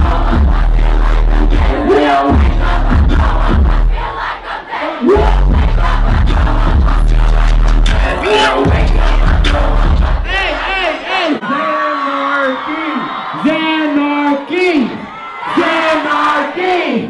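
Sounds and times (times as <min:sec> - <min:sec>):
loud live music with heavy bass: 0:00.0 - 0:04.2, 0:05.0 - 0:11.0
crowd yelling: 0:00.0 - 0:17.0.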